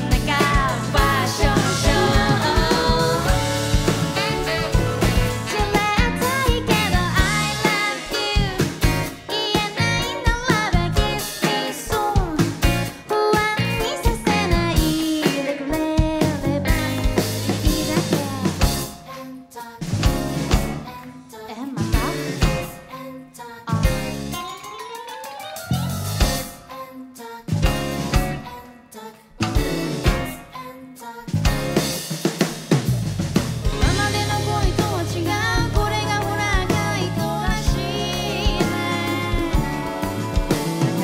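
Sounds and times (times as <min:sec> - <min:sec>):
drum kit beat: 0:00.0 - 0:19.1, 0:19.8 - 0:21.0, 0:21.8 - 0:22.8, 0:23.7 - 0:26.6, 0:27.5 - 0:28.5, 0:29.4 - 0:30.5, 0:31.3 - 0:41.0
live band playing pop: 0:00.0 - 0:21.1, 0:21.7 - 0:23.0, 0:23.6 - 0:30.5, 0:31.2 - 0:41.0.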